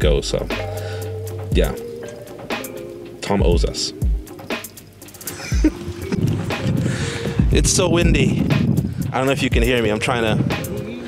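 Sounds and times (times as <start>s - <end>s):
background music: 0.0s - 11.0s
wind buffeting microphone: 5.3s - 11.0s.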